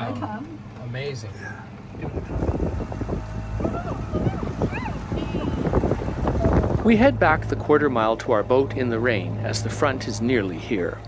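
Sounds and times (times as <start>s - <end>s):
outboard motor running: 0.0s - 11.0s
voices calling out: 0.0s - 11.0s
wind noise on microphone: 1.9s - 9.8s.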